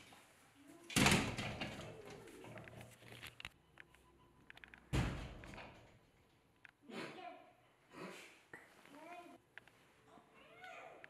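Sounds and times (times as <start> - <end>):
glass door banging shut: 0.9 - 1.9.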